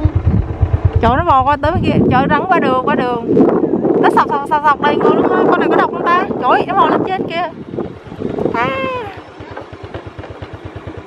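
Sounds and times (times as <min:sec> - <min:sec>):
motorbike engine idling: 0:00.0 - 0:03.0, 0:05.3 - 0:11.0.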